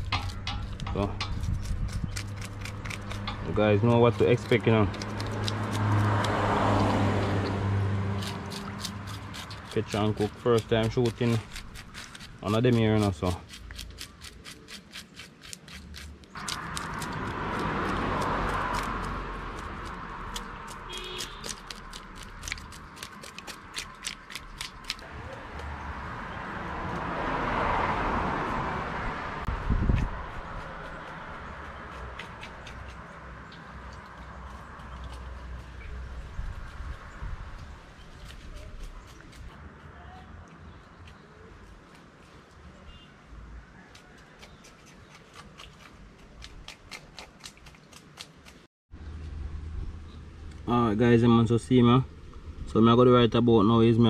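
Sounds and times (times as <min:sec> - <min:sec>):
knife scraping fish scales: 0:00.0 - 0:06.3, 0:08.0 - 0:25.0, 0:30.3 - 0:33.2, 0:43.9 - 0:48.6.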